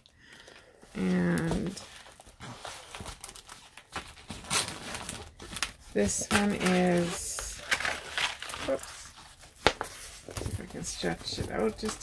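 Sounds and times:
paper and plastic film rustling: 0.3s - 12.0s.

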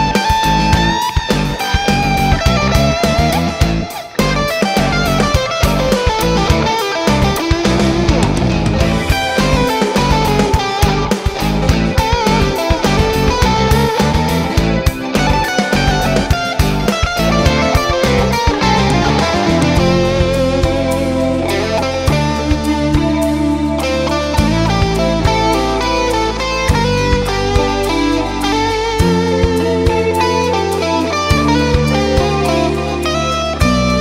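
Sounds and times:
electric guitar rock playing: 0.0s - 34.0s.

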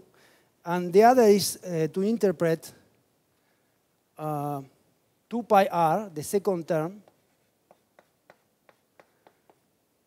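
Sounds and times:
chalk tapping on chalkboard: 7.0s - 9.7s.

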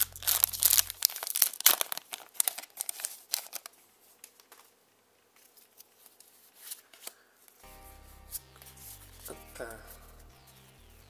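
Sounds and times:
soft background music: 0.0s - 1.1s, 7.6s - 11.0s.

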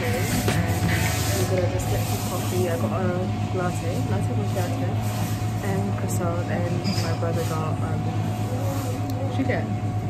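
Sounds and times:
faint chatter: 0.0s - 10.0s.

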